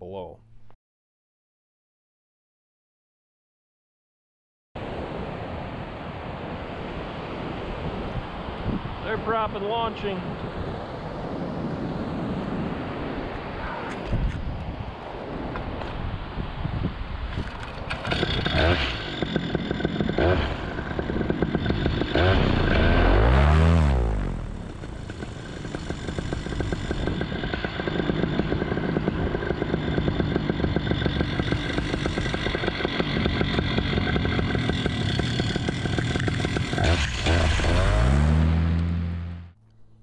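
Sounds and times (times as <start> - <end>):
paramotor engine revving: 17.9 - 39.6.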